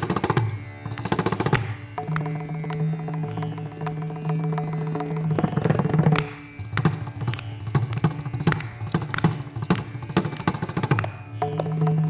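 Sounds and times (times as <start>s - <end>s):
faint steady drone: 0.0s - 12.0s.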